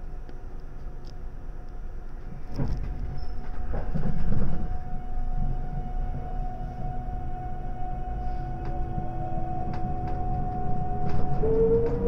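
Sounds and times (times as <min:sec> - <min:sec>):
train low rumble: 0:00.0 - 0:12.0
train motor whine: 0:02.2 - 0:12.0.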